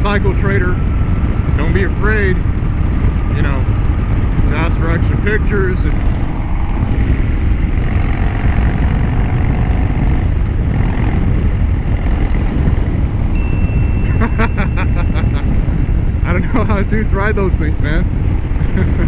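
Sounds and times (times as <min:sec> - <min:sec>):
wind on microphone: 0:00.0 - 0:19.0
motorcycle engine running: 0:00.1 - 0:19.0
thin high tone: 0:13.4 - 0:15.6.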